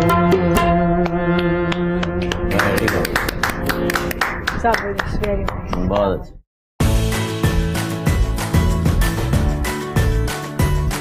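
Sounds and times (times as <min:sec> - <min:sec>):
harmonium notes: 0:00.0 - 0:04.0.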